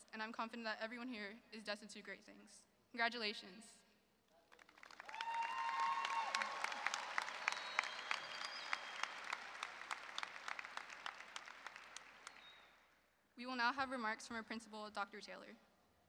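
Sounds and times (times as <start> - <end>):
audience applauding and cheering: 4.5 - 12.8.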